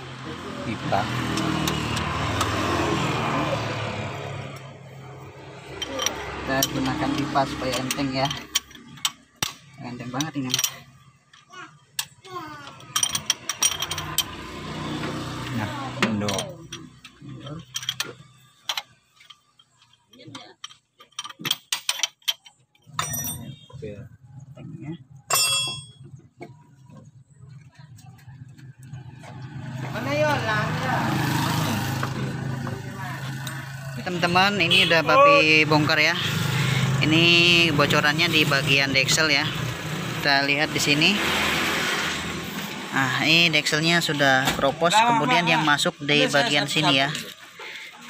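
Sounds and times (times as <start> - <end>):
metal tools clinking on engine: 1.0 - 3.4, 5.6 - 23.8, 25.2 - 26.9
sharp metallic ring: 23.0 - 23.7, 25.3 - 26.1.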